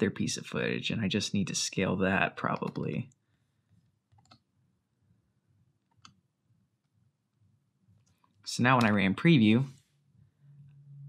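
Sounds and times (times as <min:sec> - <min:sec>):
computer mouse clicks: 0:04.1 - 0:04.5.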